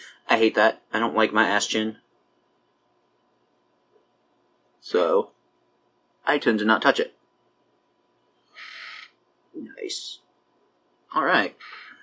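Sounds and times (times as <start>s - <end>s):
short breath hiss: 8.6s - 9.1s, 11.6s - 12.0s
person speaking: 8.6s - 10.2s, 11.1s - 12.0s.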